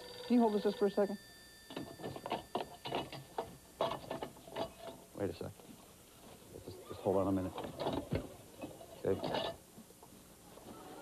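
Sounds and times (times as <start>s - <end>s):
telephone ringing with rattling clicks: 0.0s - 5.2s.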